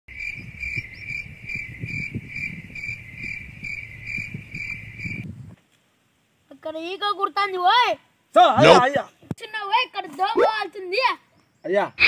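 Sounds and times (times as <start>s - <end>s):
insect chirping: 0.1s - 12.0s.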